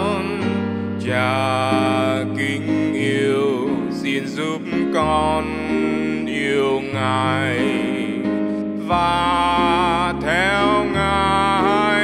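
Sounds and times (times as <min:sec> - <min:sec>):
person singing: 0:00.0 - 0:12.0
piano accompaniment: 0:00.0 - 0:12.0.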